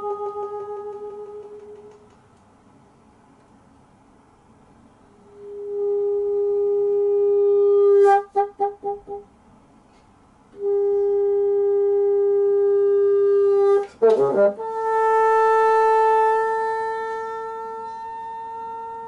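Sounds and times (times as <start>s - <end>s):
solo bassoon: 0.0s - 2.1s, 5.1s - 9.3s, 10.5s - 19.0s.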